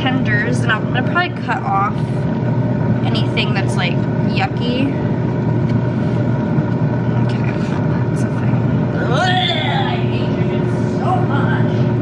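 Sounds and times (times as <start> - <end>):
air fryer fan hum: 0.0 - 12.0.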